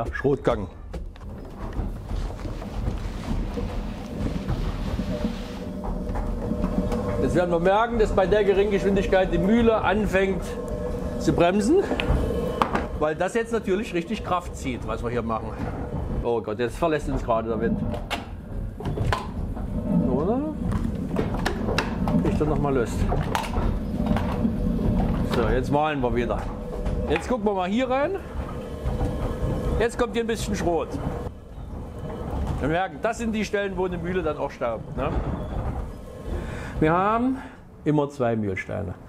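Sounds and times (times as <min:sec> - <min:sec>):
sharp wooden knocks: 0:00.0 - 0:13.1, 0:13.8 - 0:32.7
windmill millstones rumbling: 0:00.0 - 0:38.9.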